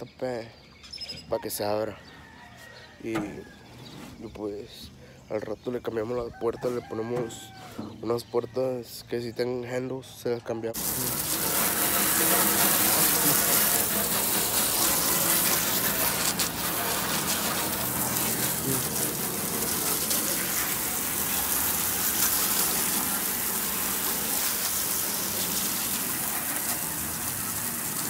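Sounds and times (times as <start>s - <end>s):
hose water spraying on metal: 10.8s - 28.0s.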